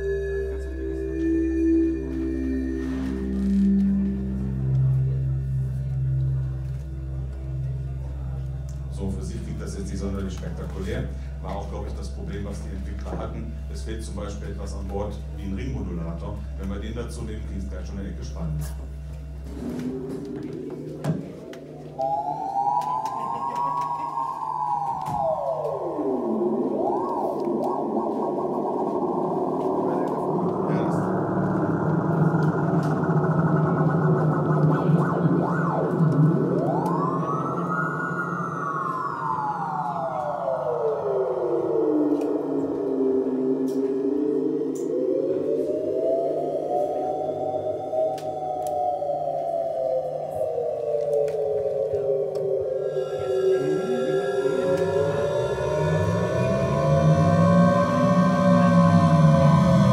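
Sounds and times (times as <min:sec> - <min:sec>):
dense electronic drone: 0:00.0 - 0:59.9
siren-like sweeping tone: 0:00.0 - 0:59.9.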